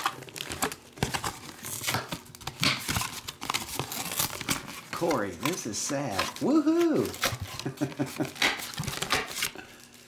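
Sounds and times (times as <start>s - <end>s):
foil wrappers crinkling: 0.0s - 10.0s.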